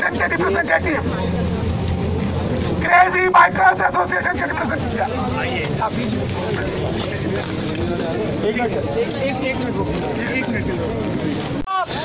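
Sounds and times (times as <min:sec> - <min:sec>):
low outdoor rumble: 0:00.0 - 0:11.6
faint crowd noise: 0:00.0 - 0:12.0.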